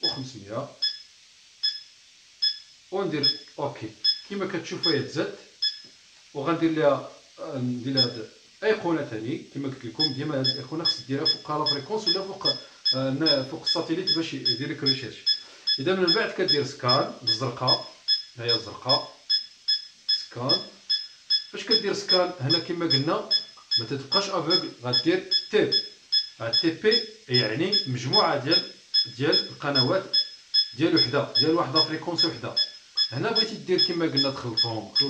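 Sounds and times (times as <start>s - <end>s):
short high beeps: 0.8s - 5.0s, 16.9s - 18.3s, 19.3s - 22.6s, 24.5s - 27.1s, 27.7s - 35.0s.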